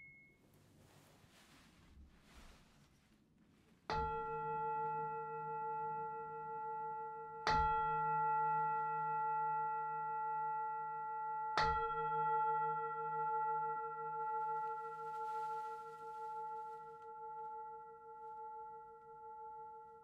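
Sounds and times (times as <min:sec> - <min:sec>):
singing bowl struck and ringing: 0:03.9 - 0:20.0.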